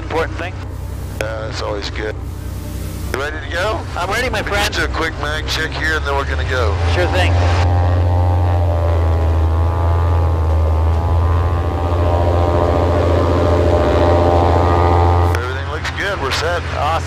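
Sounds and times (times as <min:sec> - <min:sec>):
propeller plane engine running: 0:00.0 - 0:17.0.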